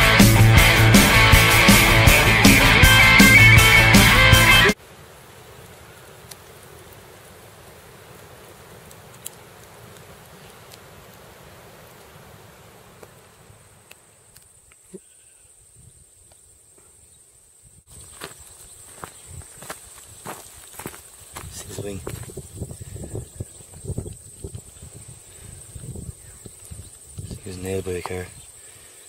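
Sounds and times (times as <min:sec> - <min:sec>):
steady hiss: 0:00.0 - 0:29.0.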